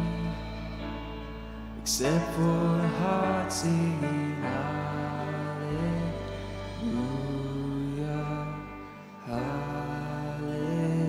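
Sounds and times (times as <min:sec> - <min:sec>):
band playing guitar chords: 0:00.0 - 0:11.0.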